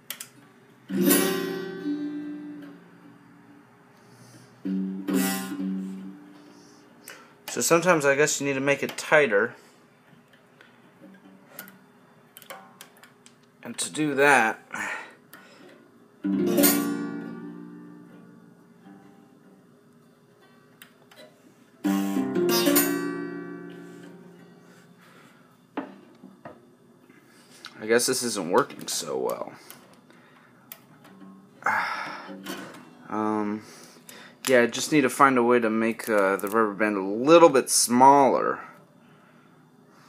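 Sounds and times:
acoustic guitar strums: 0:00.9 - 0:03.2, 0:04.6 - 0:06.6, 0:16.2 - 0:18.1, 0:21.2 - 0:24.8, 0:31.0 - 0:34.4
faint clicks and taps on guitar: 0:10.2 - 0:13.6, 0:30.7 - 0:31.3.

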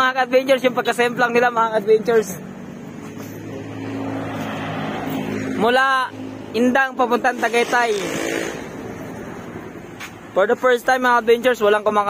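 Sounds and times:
vehicle driving past: 0:02.3 - 0:06.6, 0:07.3 - 0:09.9.

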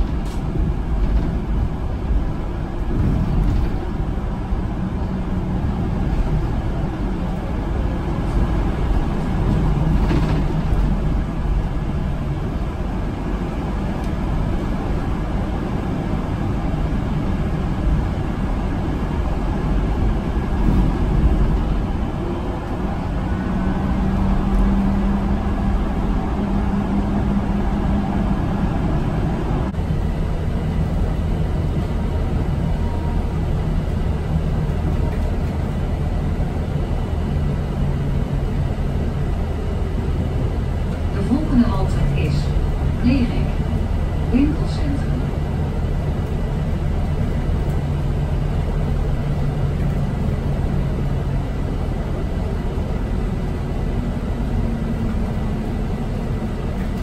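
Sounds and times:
bus road and drive rumble: 0:00.0 - 0:57.0.

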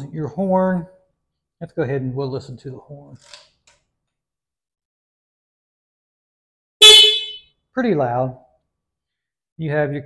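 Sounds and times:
scooter horn honk: 0:06.8 - 0:07.5.

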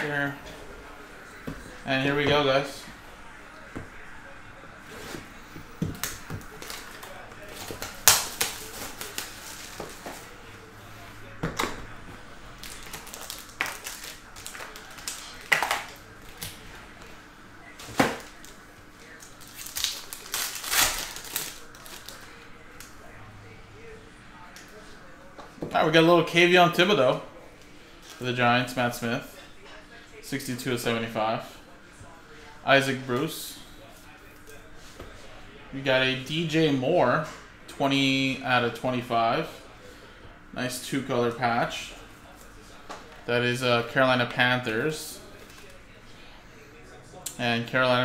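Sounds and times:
wrapper and foil crinkling: 0:06.0 - 0:10.4, 0:12.6 - 0:16.6, 0:17.8 - 0:22.9
cardboard snapping and tearing: 0:07.7 - 0:09.6.

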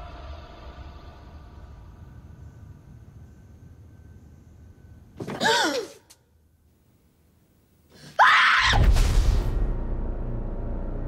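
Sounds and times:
faint low rumble: 0:00.0 - 0:05.2, 0:08.9 - 0:11.0.

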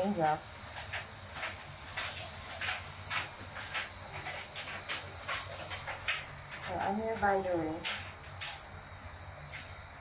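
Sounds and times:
raindrops ticking: 0:00.0 - 0:10.0.

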